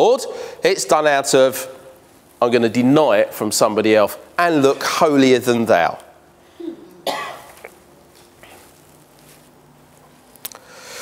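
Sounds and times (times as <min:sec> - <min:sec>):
person coughing: 0:06.6 - 0:07.7.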